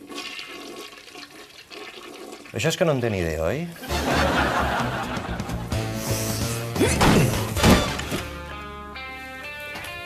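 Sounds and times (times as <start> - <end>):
toilet flushing: 0.0 - 5.0.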